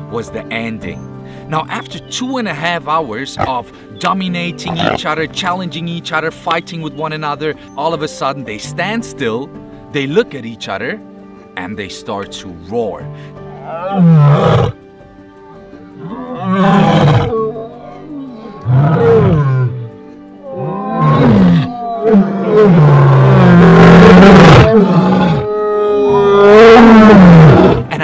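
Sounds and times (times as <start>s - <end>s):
lions roaring: 4.6s - 5.0s, 13.5s - 14.8s, 16.0s - 19.8s, 20.4s - 27.9s.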